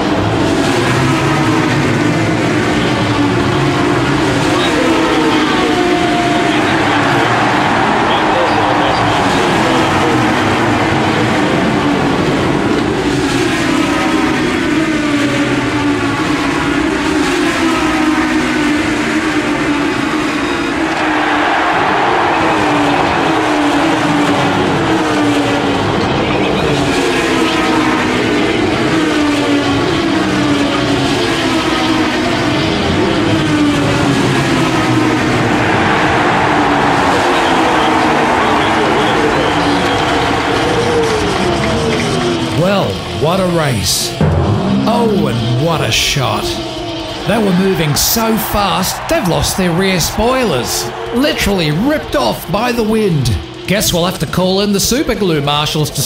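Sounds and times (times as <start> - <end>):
race car engine revving: 0.0 - 56.0.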